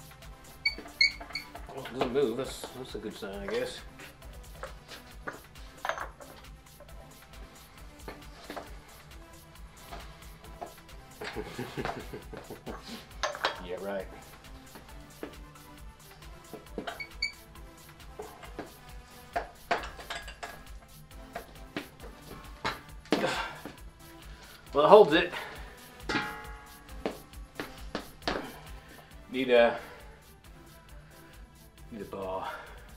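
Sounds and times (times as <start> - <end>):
metal tools clanking on nut: 5.8 - 6.4, 13.2 - 13.6, 19.7 - 20.7
man laughing: 11.2 - 13.0
metallic clank with ringing: 26.1 - 26.7.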